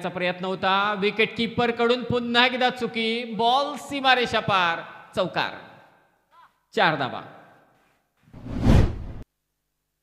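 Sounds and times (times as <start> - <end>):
whoosh sound effect: 8.4 - 9.2.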